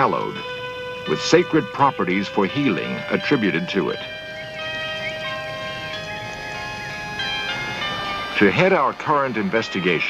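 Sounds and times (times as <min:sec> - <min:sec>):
high wavering melody: 0:00.0 - 0:10.0
music of long held notes: 0:00.0 - 0:10.0.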